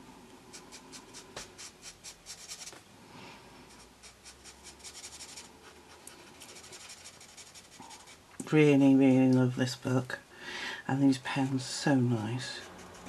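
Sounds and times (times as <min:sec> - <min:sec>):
marker rubbing on paper: 0:00.5 - 0:02.8, 0:03.7 - 0:08.2, 0:12.6 - 0:13.0.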